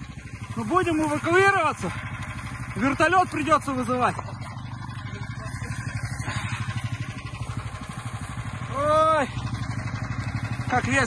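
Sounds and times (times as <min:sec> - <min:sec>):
small engine throbbing: 0:00.0 - 0:11.0.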